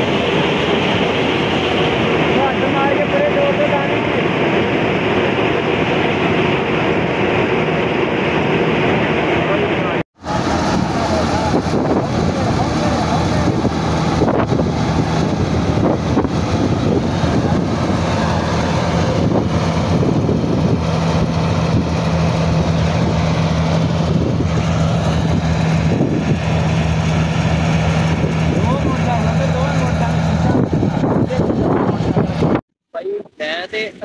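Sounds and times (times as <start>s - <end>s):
combine harvester engine drone: 0.0s - 32.6s.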